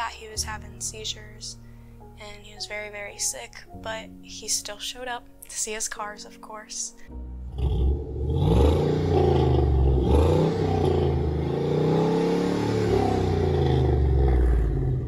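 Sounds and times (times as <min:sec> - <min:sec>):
truck engine running deep: 0:07.5 - 0:15.0.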